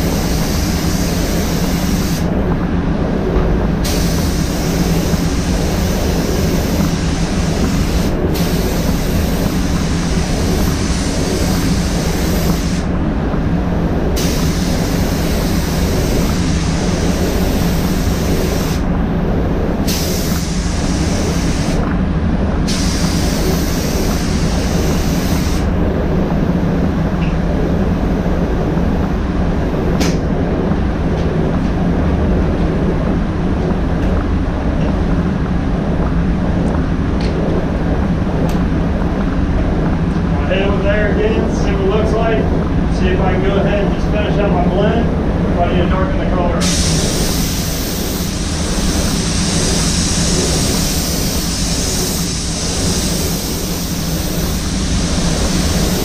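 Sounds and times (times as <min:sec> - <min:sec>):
spray gun air hissing: 0:00.0 - 0:02.3, 0:03.8 - 0:12.9, 0:14.1 - 0:18.9, 0:19.7 - 0:21.8, 0:22.6 - 0:25.8, 0:46.6 - 0:56.0
air-handling fans droning: 0:00.0 - 0:56.0.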